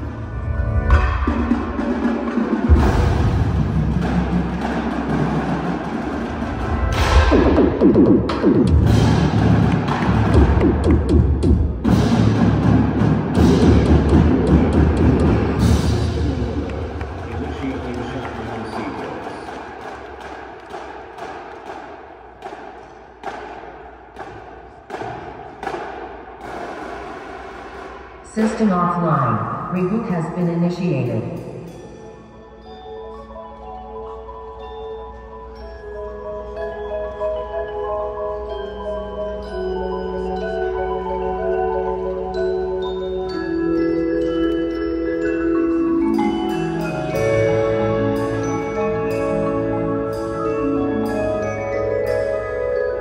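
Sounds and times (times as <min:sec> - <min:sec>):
drums: 0:00.0 - 0:21.8, 0:24.9 - 0:32.5
marimbas and vibraphones: 0:11.4 - 0:19.9, 0:31.2 - 0:53.0.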